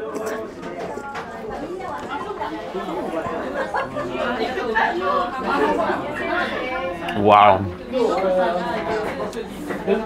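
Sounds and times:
overlapping indistinct voices: 0.0s - 10.0s.

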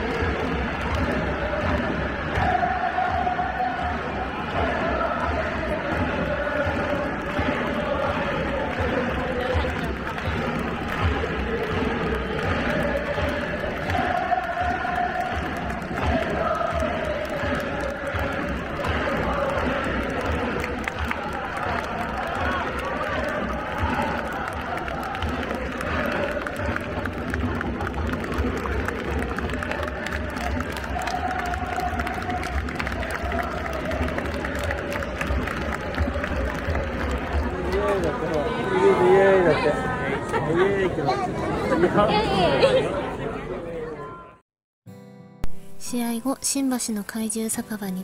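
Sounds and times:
crowd clapping: 0.0s - 42.7s
crowd cheering: 0.0s - 44.4s
stadium crowd singing and chanting: 0.0s - 44.4s.

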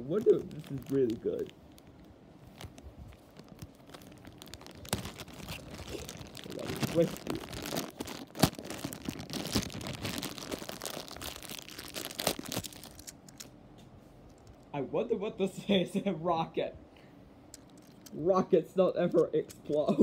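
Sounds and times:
plastic bag crinkling and tearing: 0.0s - 13.5s.

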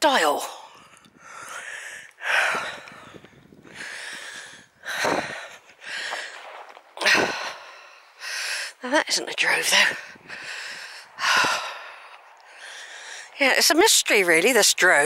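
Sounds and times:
person breathing heavily: 0.5s - 8.8s, 9.7s - 13.4s.

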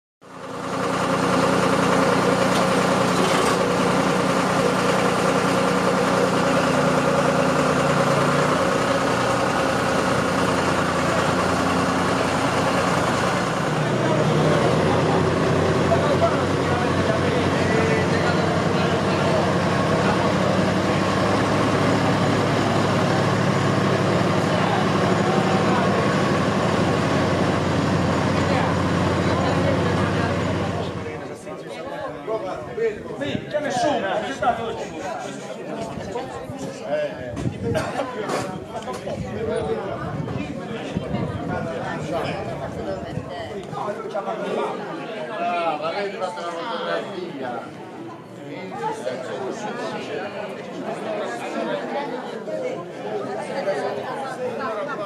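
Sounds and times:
tractor engines idling: 0.3s - 31.4s
people talking: 1.1s - 55.0s.

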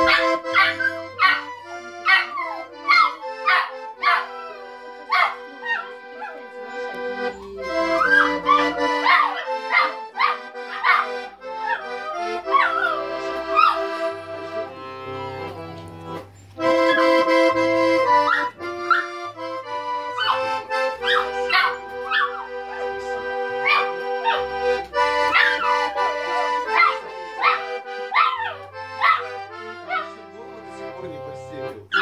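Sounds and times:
dog howling: 0.0s - 13.8s, 20.2s - 23.0s, 23.6s - 24.5s, 25.3s - 29.3s, 29.9s - 30.1s
accordion chords: 0.0s - 32.0s
music with held notes: 0.0s - 32.0s
small dog howling: 7.4s - 11.0s, 26.8s - 29.2s.

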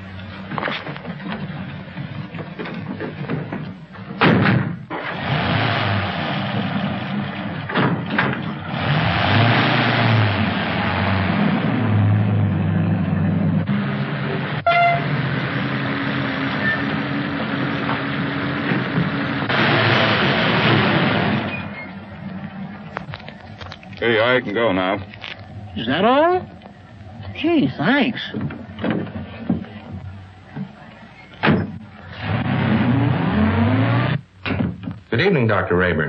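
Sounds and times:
car engine pulling away: 0.0s - 35.0s.

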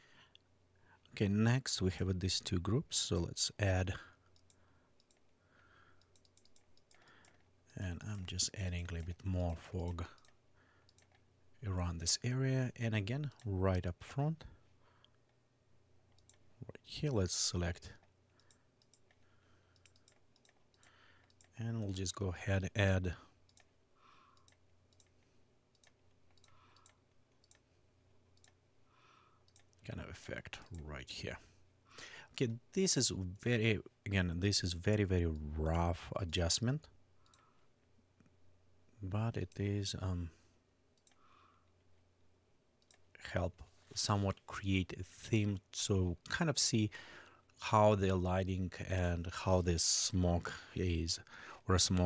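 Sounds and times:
low steady hum: 0.0s - 52.0s
computer mouse clicks: 4.3s - 5.3s, 6.0s - 7.5s, 16.1s - 16.4s, 18.0s - 21.9s, 23.5s - 23.7s, 24.3s - 27.7s, 37.2s - 37.5s.

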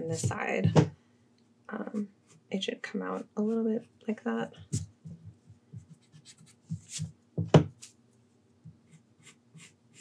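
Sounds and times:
pencil scratching on paper: 5.7s - 7.1s, 8.8s - 10.0s.

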